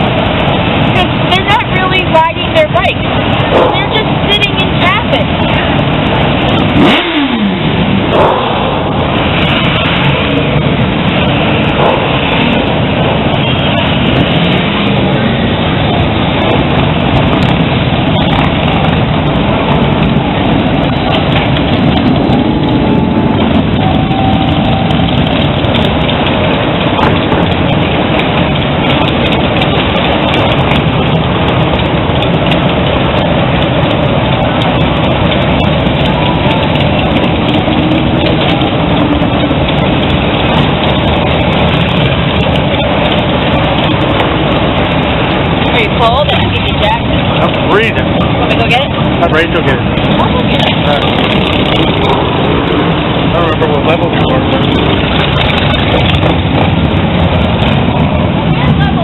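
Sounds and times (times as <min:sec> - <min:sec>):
crowd voices: 0:00.0 - 0:59.0
motorcycle engines passing: 0:00.0 - 0:59.0.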